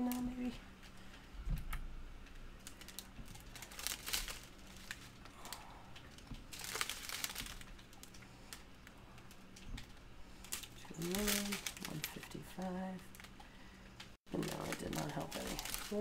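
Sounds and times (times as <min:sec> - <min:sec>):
plastic bags crinkling: 0:02.6 - 0:13.4, 0:14.3 - 0:16.0.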